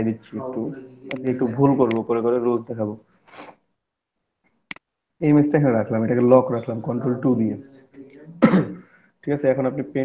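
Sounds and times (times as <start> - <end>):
person speaking: 0.0 - 3.5
person clearing throat: 8.4 - 8.9.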